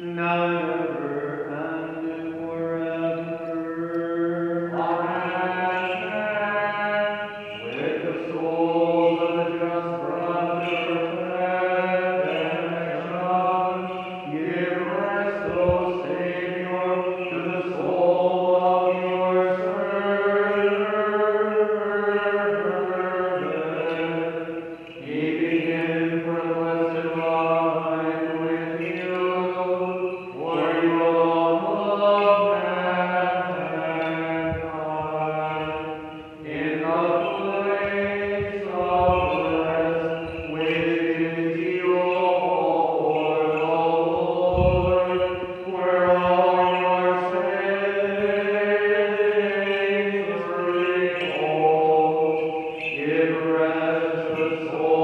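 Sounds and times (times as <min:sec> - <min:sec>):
man chanting unaccompanied: 0:00.0 - 0:55.0.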